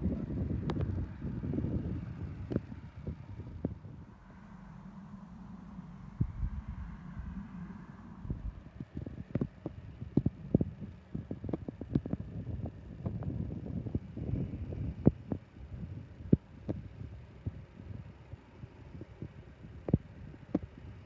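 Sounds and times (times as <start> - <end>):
wind buffeting microphone: 0.0 - 18.1.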